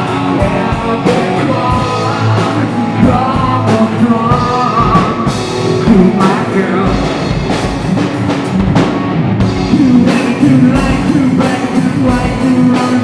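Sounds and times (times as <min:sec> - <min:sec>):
person singing: 0:00.0 - 0:07.2, 0:09.6 - 0:13.0
drum kit with cymbal crashes: 0:00.0 - 0:13.0
electric guitar: 0:00.0 - 0:13.0.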